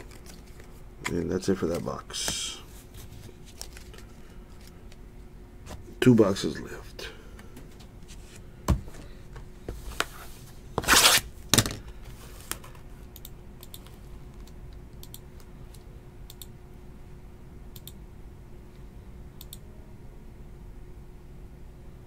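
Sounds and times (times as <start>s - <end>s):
shrink-wrap rustling scrape: 10.1s - 11.2s.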